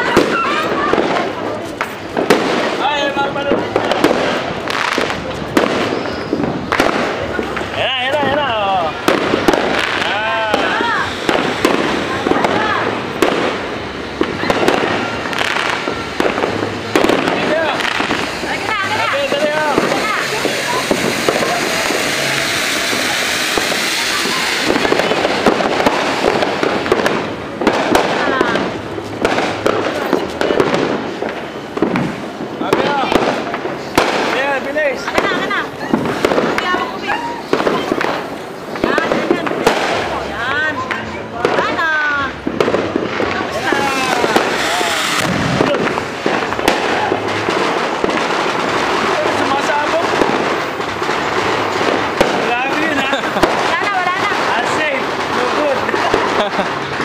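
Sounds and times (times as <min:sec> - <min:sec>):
firecracker pops and cracks: 0:00.0 - 0:57.0
fountain fireworks hissing: 0:00.0 - 0:57.0.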